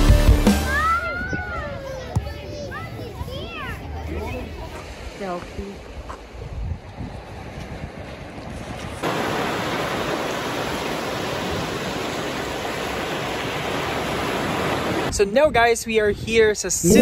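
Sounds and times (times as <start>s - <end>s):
wind: 0.5s - 17.0s
waves breaking on shore: 4.1s - 15.2s.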